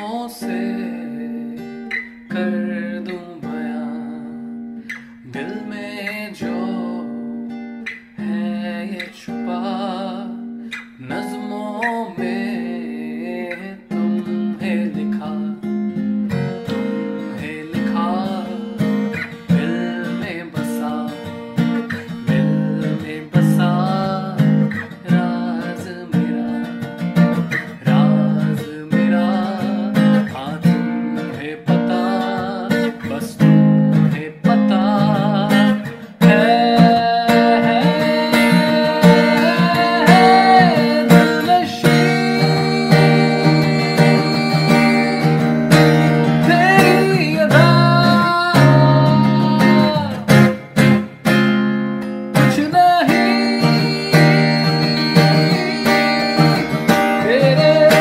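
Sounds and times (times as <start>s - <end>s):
man singing: 0.0s - 51.2s, 52.3s - 58.0s
strummed acoustic guitar: 0.0s - 58.0s.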